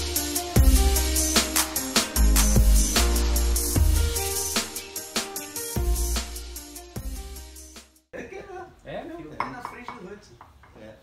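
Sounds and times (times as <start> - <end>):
dishes and cutlery clinking: 9.4 - 10.8.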